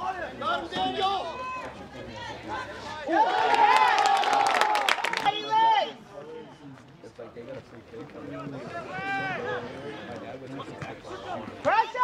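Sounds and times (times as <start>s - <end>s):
spectators shouting: 0.0s - 6.0s.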